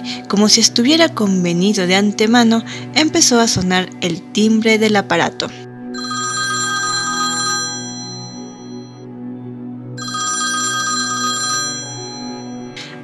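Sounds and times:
soft background music: 0.0 - 13.0
telephone ringing: 6.0 - 9.1, 10.0 - 12.8.

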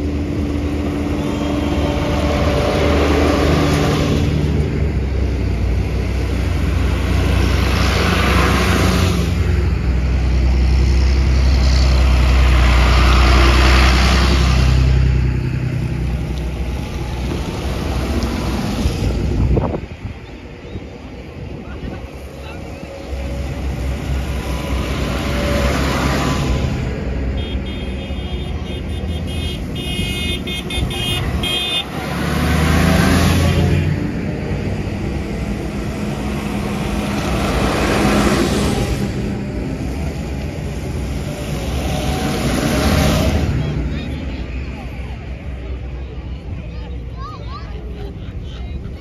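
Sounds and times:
tractors driving past: 0.0 - 49.0
tyres on wet road: 0.0 - 49.0
horn tooting: 27.3 - 32.1, 33.0 - 34.0.

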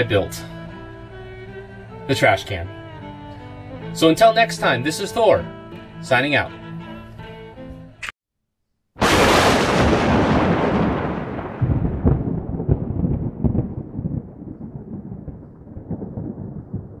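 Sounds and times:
low thunder rumble: 9.0 - 17.0
thunderclap: 9.0 - 17.0.

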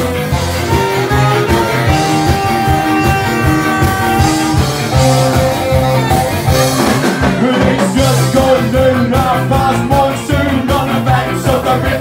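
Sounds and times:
live band playing: 0.0 - 12.0
person singing: 7.0 - 12.0.

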